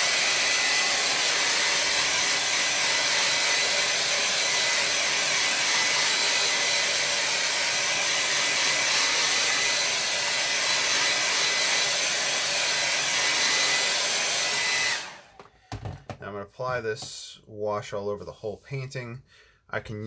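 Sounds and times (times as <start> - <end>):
hair dryer running: 0.0 - 16.1.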